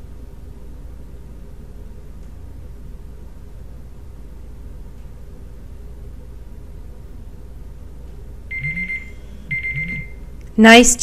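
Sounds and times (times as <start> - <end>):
faint low hum: 0.0 - 11.0
electronic timer beep: 8.5 - 10.3.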